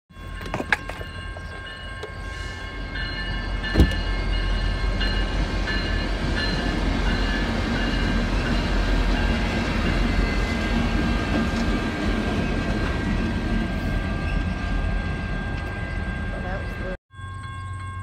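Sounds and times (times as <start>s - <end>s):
train rumbling past: 0.2s - 17.9s.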